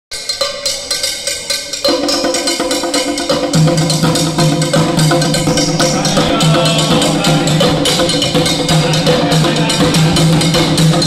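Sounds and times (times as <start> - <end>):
conga drums: 0.1 - 11.0
metal bell rhythm: 3.9 - 11.0.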